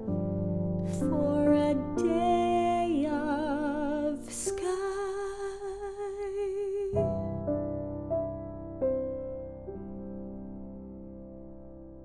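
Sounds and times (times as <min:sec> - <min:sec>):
soft sustained piano: 0:00.0 - 0:12.0
woman singing with vibrato: 0:00.9 - 0:07.2.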